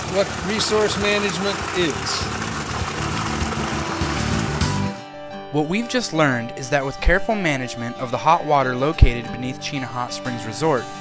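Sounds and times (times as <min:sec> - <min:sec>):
steady rushing water: 0:00.0 - 0:04.9
machine hum: 0:00.0 - 0:05.0.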